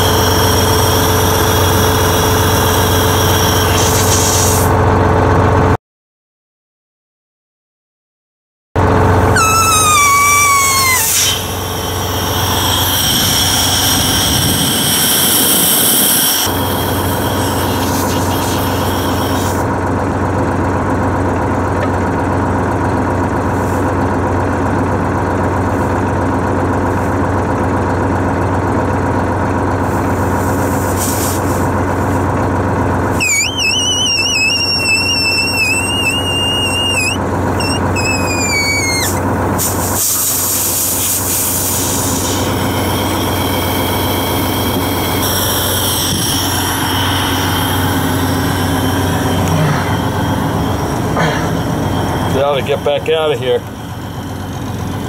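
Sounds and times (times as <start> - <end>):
wavering high whistle: 0.0 - 4.3, 9.3 - 19.5, 33.1 - 40.5, 42.0 - 52.6
compressed air hissing: 0.0 - 4.7, 9.4 - 19.6, 30.3 - 31.7, 33.1 - 52.8
bus engine idling: 0.0 - 5.8, 8.8 - 55.0.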